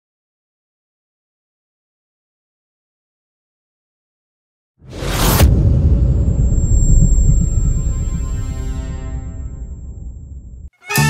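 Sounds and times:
bright whoosh: 4.9s - 10.7s
deep loud rumble: 4.9s - 10.7s.

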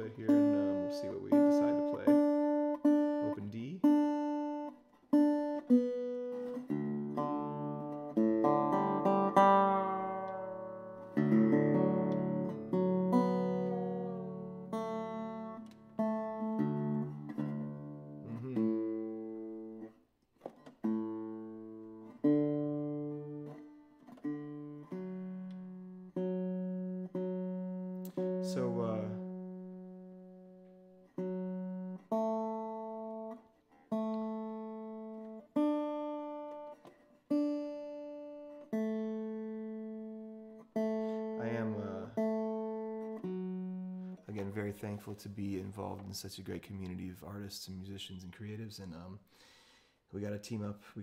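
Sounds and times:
guitar chords strummed: 0.0s - 47.2s
guitar strings plucked: 0.0s - 47.3s.

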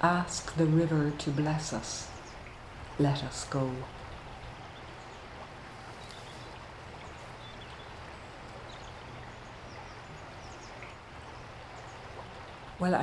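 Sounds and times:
river water flowing: 0.0s - 13.0s.

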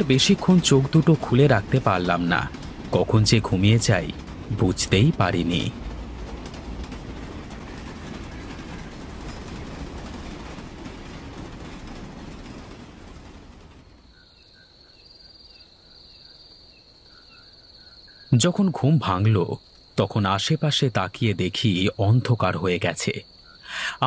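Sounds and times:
crickets chirring: 0.0s - 24.0s
train rattling: 0.0s - 24.0s.

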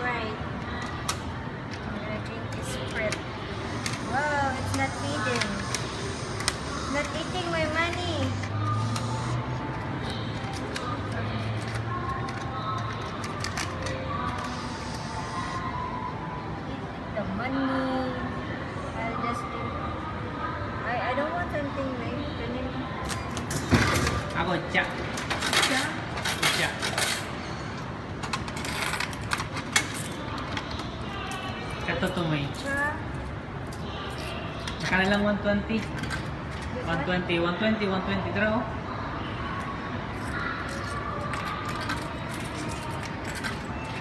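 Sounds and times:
coins clinking in a machine: 25.2s - 30.5s.

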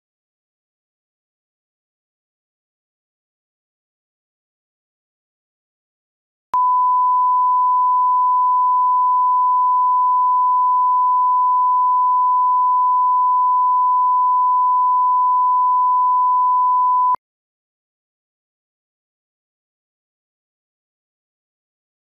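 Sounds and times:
steady test tone beep: 6.6s - 17.2s.

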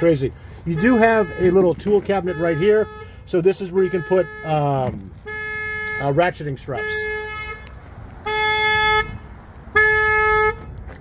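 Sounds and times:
truck horn honking: 0.0s - 10.8s.

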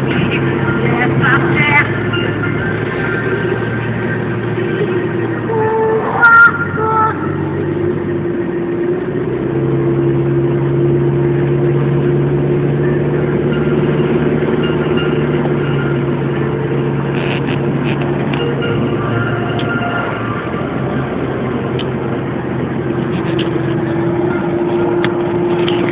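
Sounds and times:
car engine hum: 0.0s - 25.9s.

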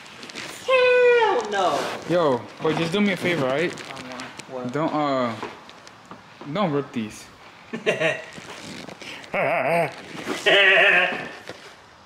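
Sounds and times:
man laughing: 7.7s - 8.3s, 9.3s - 11.4s.

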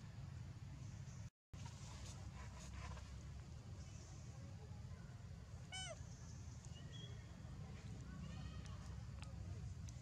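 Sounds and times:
baby monkey high-pitched call: 5.7s - 6.0s.

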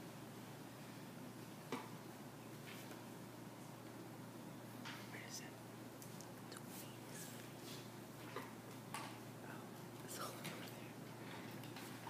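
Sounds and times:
low room hum: 0.0s - 12.0s
faint whispering: 5.0s - 5.6s, 6.4s - 7.4s, 9.4s - 11.0s.

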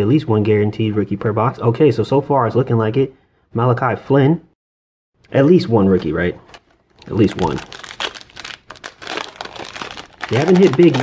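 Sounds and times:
foil wrapper crinkling: 6.5s - 11.0s.

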